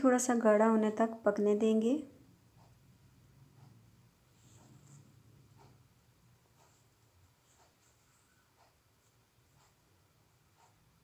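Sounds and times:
soft scratchy sounds: 3.5 - 11.0.

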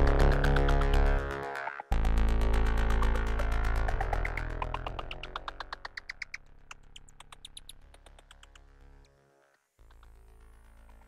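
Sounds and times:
low drone: 0.0 - 6.7
synthesizer blips: 0.0 - 9.1.

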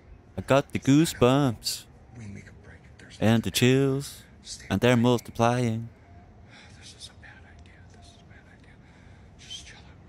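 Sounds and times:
person whispering: 9.4 - 10.0.

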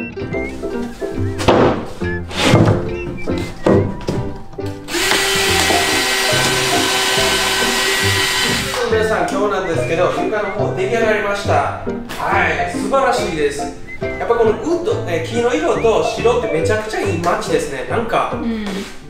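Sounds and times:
background music: 0.0 - 19.0
power driver driving screws: 4.9 - 8.9.

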